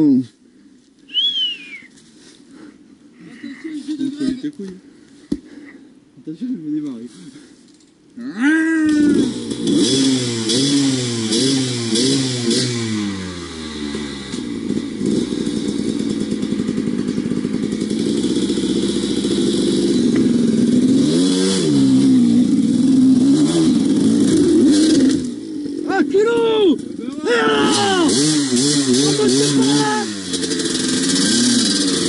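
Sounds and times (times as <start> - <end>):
dirt bike engine revving: 8.8 - 26.0, 26.8 - 32.0.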